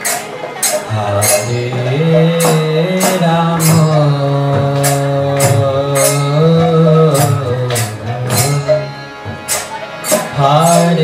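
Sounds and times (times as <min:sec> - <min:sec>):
metallic percussion strikes: 0:00.0 - 0:11.0
sustained melodic accompaniment: 0:00.0 - 0:11.0.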